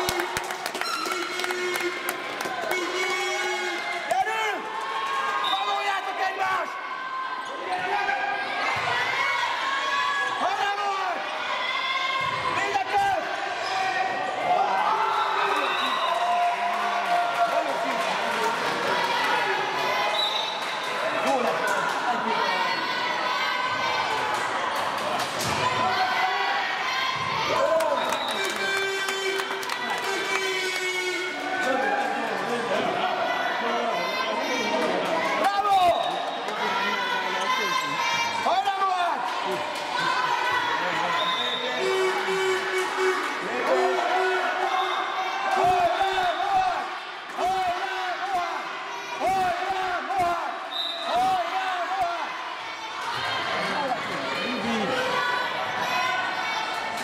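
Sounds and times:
people shouting: 40.0s - 57.0s.

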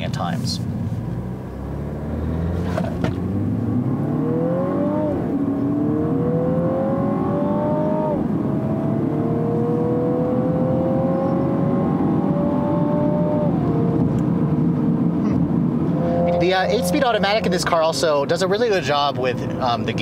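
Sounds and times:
road noise: 0.0s - 20.0s
car engine accelerating: 0.6s - 20.0s.

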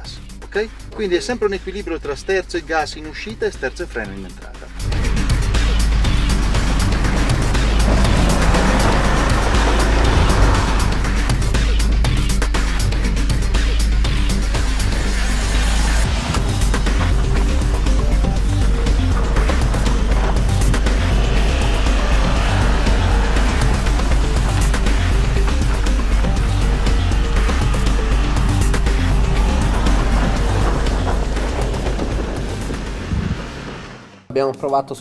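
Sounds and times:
background music with steady beat: 0.0s - 33.1s
tyres sliding and spraying snow: 3.2s - 34.3s
car engine: 4.3s - 34.3s.

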